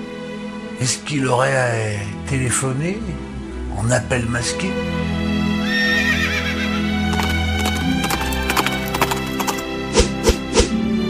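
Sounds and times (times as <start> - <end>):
background music: 0.0 - 11.0
horse whinny: 5.6 - 9.6
hoofbeat clip-clops: 7.1 - 10.4.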